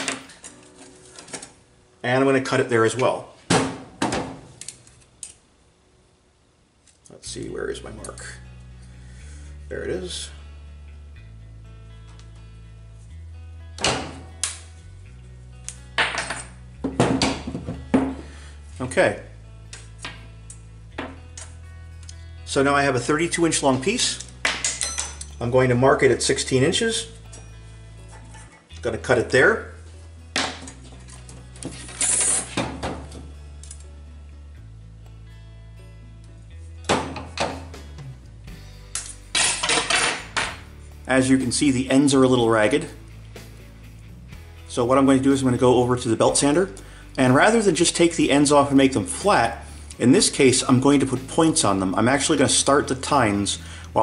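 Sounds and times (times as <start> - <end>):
background music: 0.0 - 5.4, 7.1 - 54.0
bolt cutters snipping metal rod: 13.8 - 14.7
metallic clinks on wooden bench: 24.3 - 25.4.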